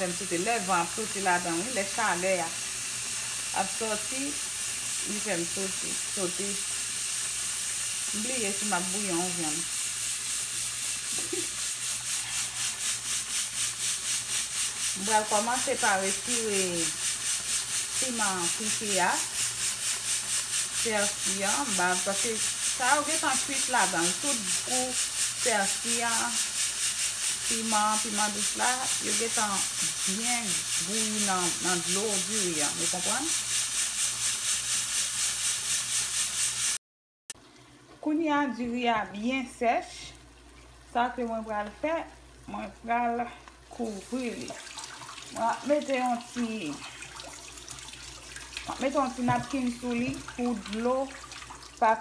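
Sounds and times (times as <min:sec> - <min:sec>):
pot boiling and bubbling: 0:00.0 - 0:36.8, 0:39.0 - 0:52.0.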